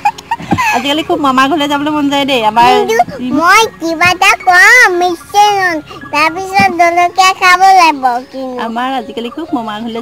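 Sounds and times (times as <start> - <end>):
child singing: 2.7 - 8.2.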